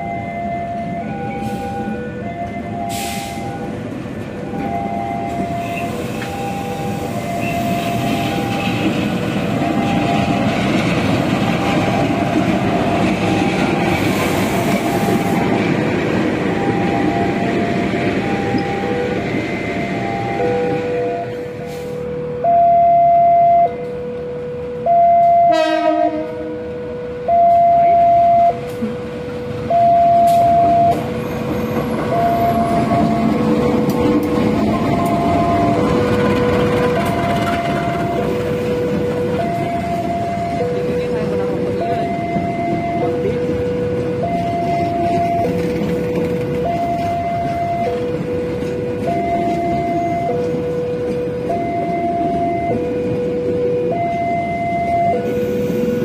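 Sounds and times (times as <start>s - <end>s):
trains passing rumble: 0.0s - 56.0s.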